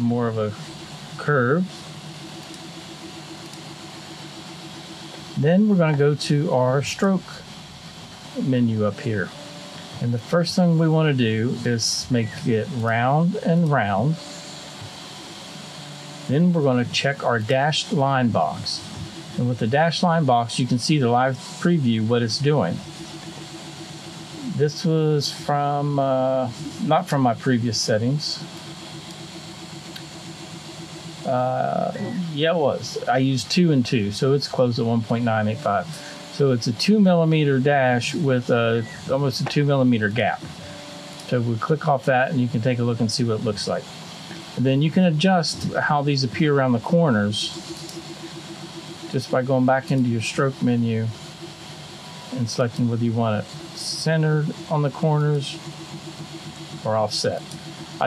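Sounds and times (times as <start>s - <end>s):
faint pulsing hum: 0.0s - 58.0s.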